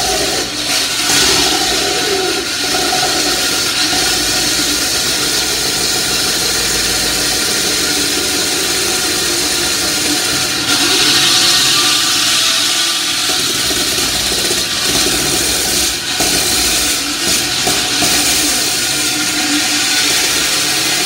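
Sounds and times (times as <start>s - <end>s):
concrete saw cutting: 0.0s - 21.0s
high-pitched grinding hiss: 0.0s - 21.0s.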